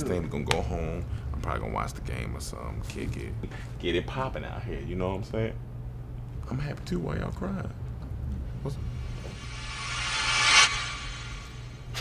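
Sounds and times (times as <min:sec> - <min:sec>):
low room hum: 0:00.0 - 0:12.0
rising whoosh: 0:08.7 - 0:12.0.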